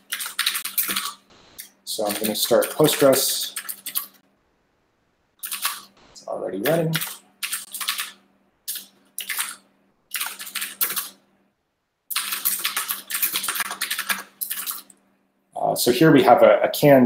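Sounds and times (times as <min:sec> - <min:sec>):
computer keyboard typing: 0:00.0 - 0:04.2, 0:05.4 - 0:11.2, 0:12.1 - 0:15.0.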